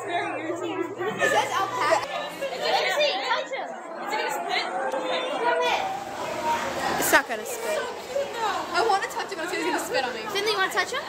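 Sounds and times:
girls chattering: 0:00.0 - 0:11.0.

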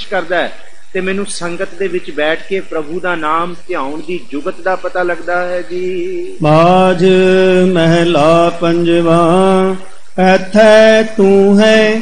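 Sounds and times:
man chanting scripture: 0:00.0 - 0:12.0
man singing: 0:04.8 - 0:12.0.

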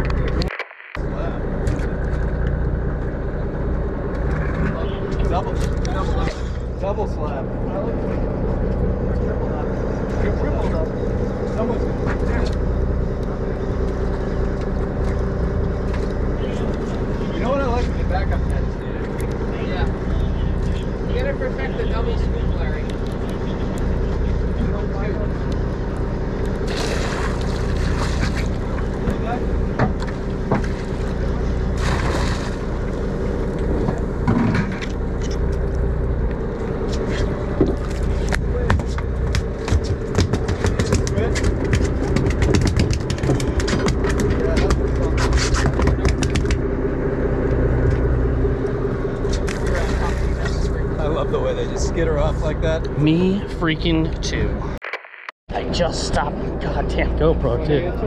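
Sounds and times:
boat engine humming: 0:00.0 - 0:54.8, 0:55.5 - 0:58.0.

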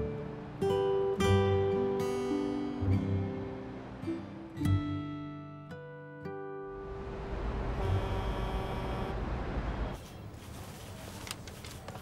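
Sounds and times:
low rumble of traffic: 0:06.6 - 0:12.0.

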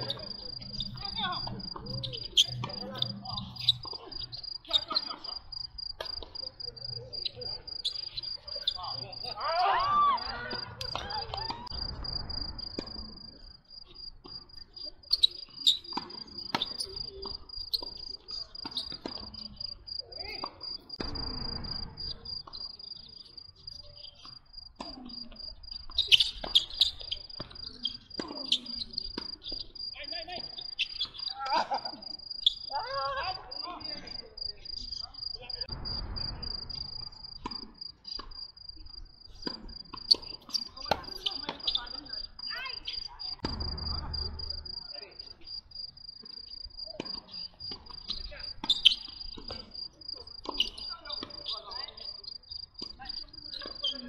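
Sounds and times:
cricket chirping trill: 0:00.0 - 0:54.0.

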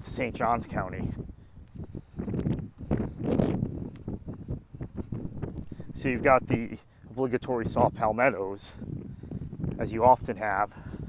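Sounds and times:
insect chorus: 0:00.0 - 0:11.0.

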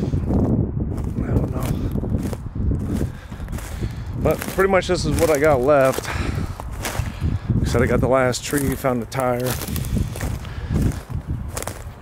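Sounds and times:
footsteps crunching on wood chips: 0:00.0 - 0:12.0.

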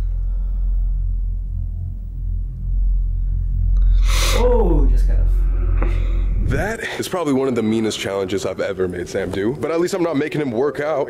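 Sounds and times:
deep rumble: 0:00.0 - 0:09.8
faint level tones: 0:00.0 - 0:10.2.

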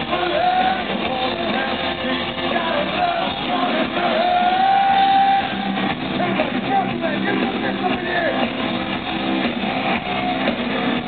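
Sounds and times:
live hard rock band: 0:00.0 - 0:11.0.

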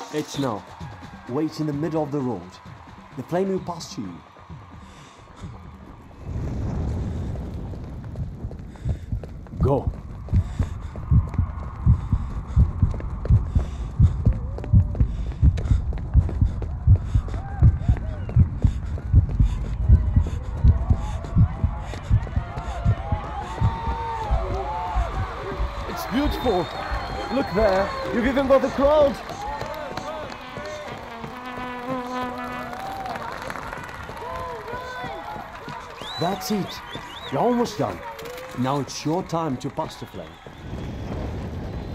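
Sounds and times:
crowd cheering and calling out: 0:00.0 - 0:06.8, 0:19.6 - 0:41.9
heartbeat thumps: 0:00.7 - 0:30.6
whistle-like glides: 0:25.8 - 0:29.1
long buzzing note: 0:30.2 - 0:33.2.

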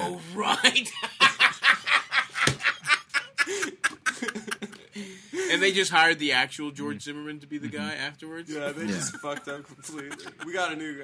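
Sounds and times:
men laughing: 0:00.5 - 0:05.6, 0:08.6 - 0:10.9.

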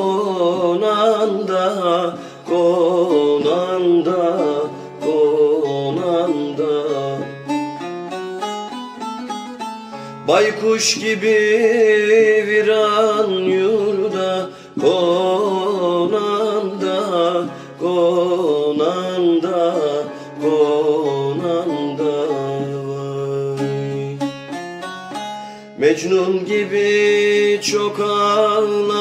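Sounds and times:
folk music ensemble: 0:00.0 - 0:29.0
plucked string instrument melody: 0:00.0 - 0:29.0.

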